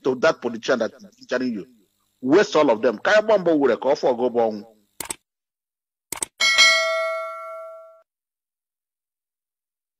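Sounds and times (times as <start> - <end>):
mouse clicks: 6.1 - 6.4
bell-like ding: 6.4 - 8.1.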